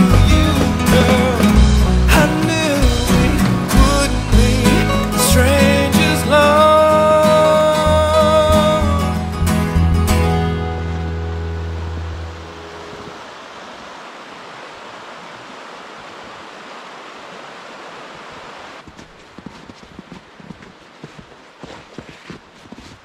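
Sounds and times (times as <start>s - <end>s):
footsteps in heavy snow: 0.0s - 2.7s, 18.8s - 23.0s
background music: 0.0s - 13.1s
river rushing: 0.0s - 22.0s.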